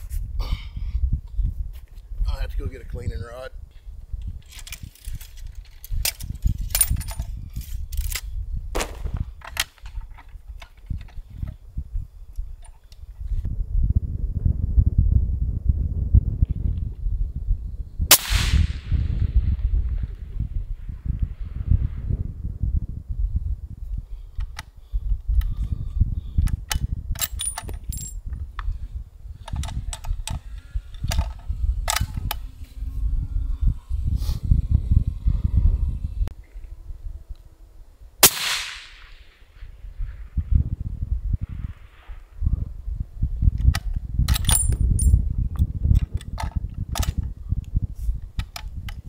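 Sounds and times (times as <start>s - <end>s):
wind rumble on microphone: 0.0s - 49.0s
suppressed rifle shot: 8.8s - 9.4s, 18.1s - 20.1s, 38.2s - 39.7s.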